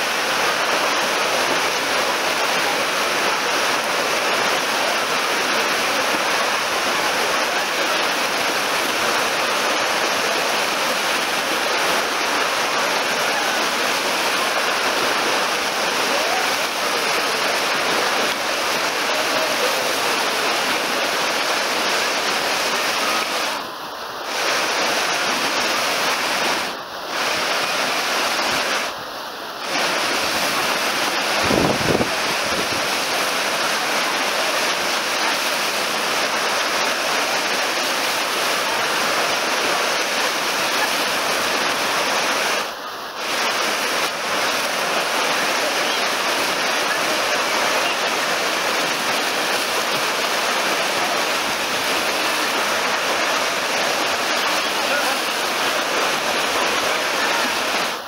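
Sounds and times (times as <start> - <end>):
waves breaking and churning: 0.0 - 58.0.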